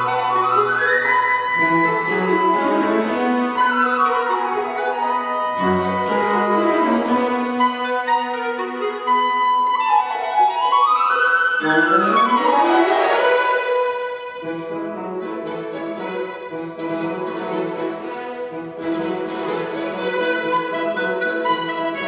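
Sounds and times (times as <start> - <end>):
chamber orchestra playing: 0.0 - 22.0.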